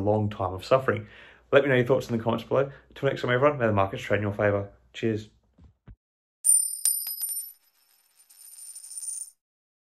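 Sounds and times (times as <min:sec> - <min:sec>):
high metallic jingle: 0:06.5 - 0:09.4.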